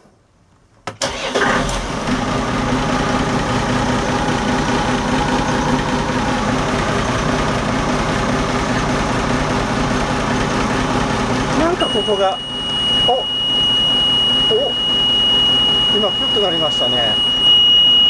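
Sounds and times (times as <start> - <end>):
diesel engine starting and idling: 0.9 - 17.4.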